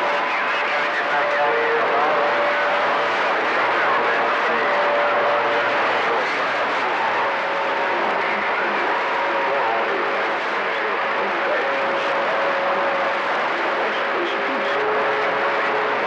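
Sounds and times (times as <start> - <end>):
radio static hiss: 0.0 - 16.0
weak unintelligible voices: 0.0 - 16.0.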